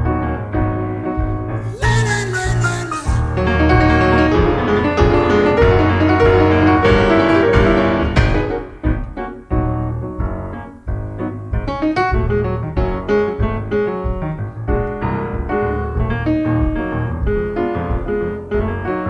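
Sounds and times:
instrumental keyboard music: 0:01.6 - 0:08.1.

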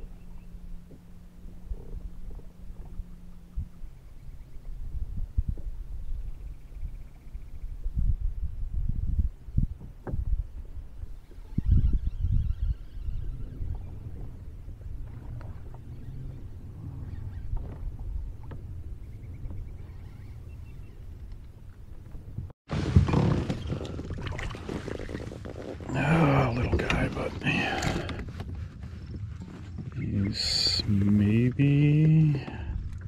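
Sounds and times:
wind rumbling on microphone: 0:00.0 - 0:33.0
fish thrashing in water: 0:22.7 - 0:25.4
fishing gear clicks and knocks: 0:26.5 - 0:29.7.

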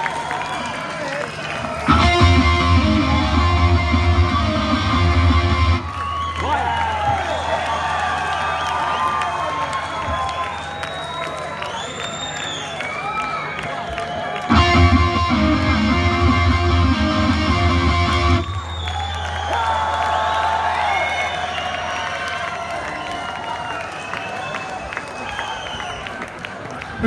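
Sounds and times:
crowd cheering and shouting: 0:00.0 - 0:27.0
distorted electric guitar chord: 0:01.9 - 0:05.9, 0:14.5 - 0:18.6.

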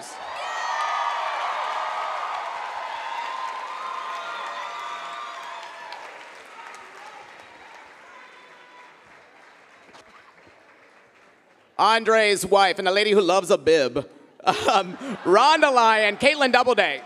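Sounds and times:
audience applauding and cheering: 0:00.0 - 0:12.2.

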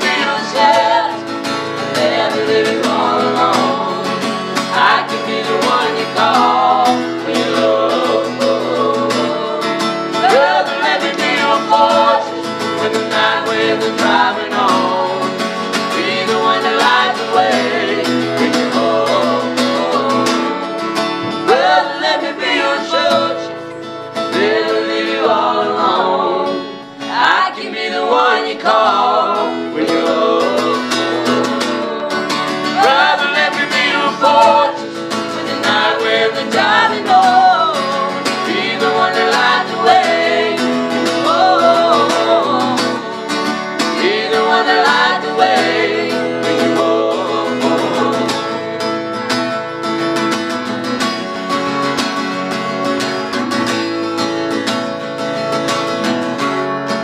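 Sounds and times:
man and woman singing: 0:00.0 - 0:20.7, 0:21.4 - 0:23.6, 0:24.3 - 0:48.7
acoustic guitar strumming: 0:00.0 - 0:57.0.

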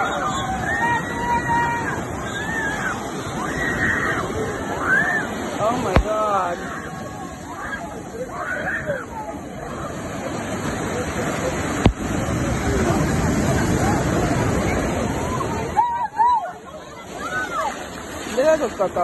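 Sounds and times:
surf breaking on sand: 0:00.0 - 0:19.0.

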